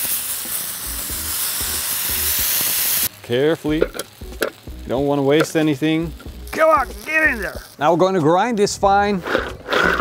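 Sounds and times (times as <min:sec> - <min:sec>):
vegetables sizzling in hot oil: 0:00.0 - 0:08.2.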